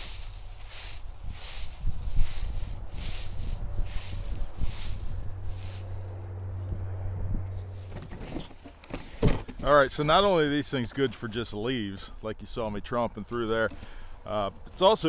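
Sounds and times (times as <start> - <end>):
footsteps crunching dry leaves: 0.0 - 6.2, 13.2 - 15.0.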